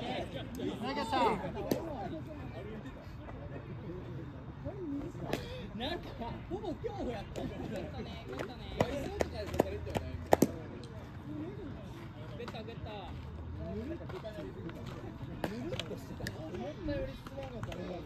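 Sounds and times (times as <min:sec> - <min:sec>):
players calling and shouting: 0:00.0 - 0:18.0.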